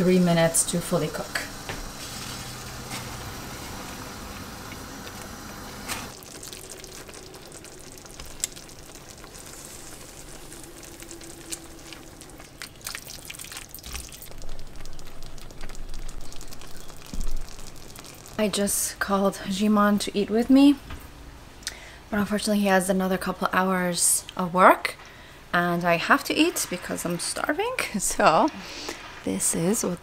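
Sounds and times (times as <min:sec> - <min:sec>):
water boiling in pot: 0:00.0 - 0:20.2, 0:25.6 - 0:30.0.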